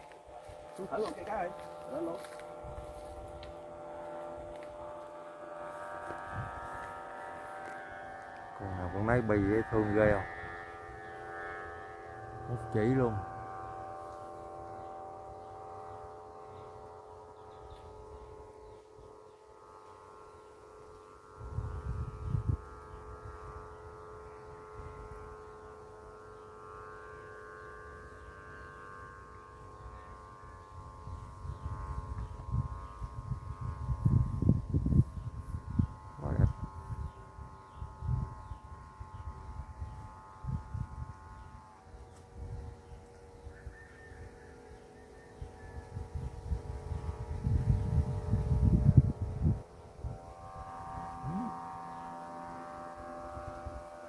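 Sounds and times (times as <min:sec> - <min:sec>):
steady drone of sustained tones: 0:00.0 - 0:54.0
wind buffeting microphone: 0:06.2 - 0:07.0, 0:21.4 - 0:23.6, 0:30.8 - 0:41.7, 0:45.4 - 0:51.6.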